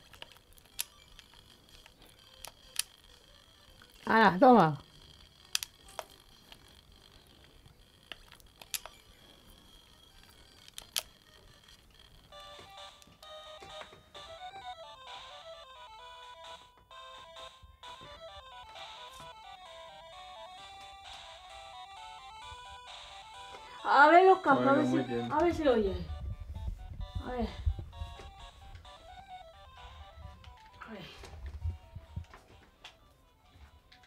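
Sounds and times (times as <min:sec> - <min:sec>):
beeping electronic tune: 0:00.0 - 0:30.9.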